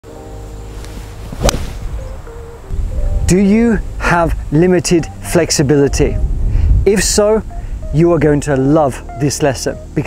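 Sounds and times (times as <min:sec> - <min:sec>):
golf club swishing: 0:00.7 - 0:02.3
golf club striking ball: 0:01.3 - 0:02.1.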